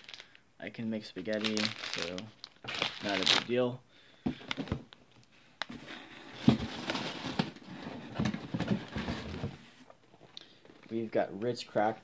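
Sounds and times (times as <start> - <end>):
rustling of items in box: 1.3 - 3.4, 5.6 - 9.8.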